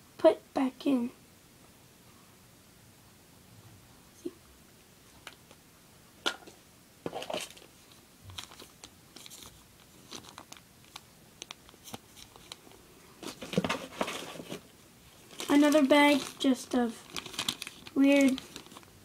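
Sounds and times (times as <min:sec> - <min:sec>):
plastic bags crinkling: 0:07.1 - 0:19.0.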